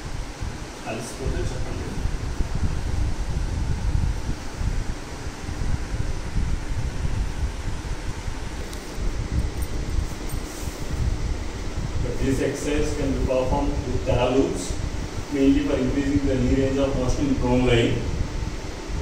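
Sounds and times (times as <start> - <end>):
faint steady hum: 0.0 - 19.0
wind buffeting microphone: 0.0 - 19.0.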